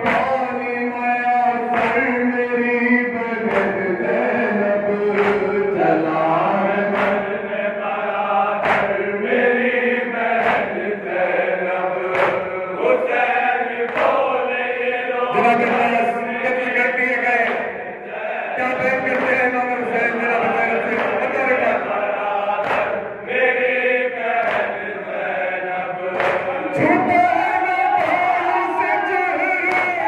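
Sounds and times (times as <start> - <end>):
hands striking chests in unison: 0.0 - 0.4, 1.7 - 2.1, 3.4 - 3.9, 5.2 - 5.8, 6.8 - 8.0, 8.6 - 9.4, 10.3 - 11.4, 12.1 - 12.6, 13.8 - 14.4, 18.6 - 19.5, 20.4 - 23.7, 24.3 - 25.0, 26.1 - 30.0
men chanting in reverberant hall: 0.0 - 30.0.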